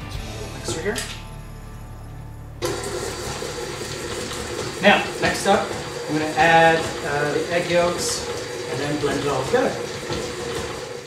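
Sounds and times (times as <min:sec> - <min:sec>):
stand mixer motor whirring: 0:02.6 - 0:11.0.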